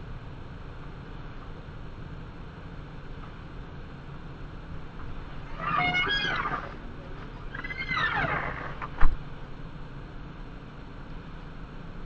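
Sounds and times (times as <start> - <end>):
raccoon wavering cry: 5.2 - 9.0.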